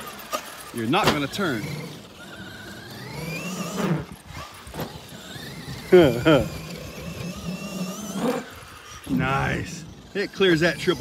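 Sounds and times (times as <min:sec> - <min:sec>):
electric motor whining: 0:00.0 - 0:11.0.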